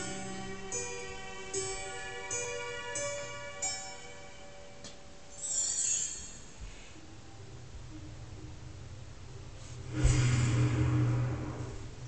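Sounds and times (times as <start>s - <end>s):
slow bell-like chime melody: 0.0s - 6.9s.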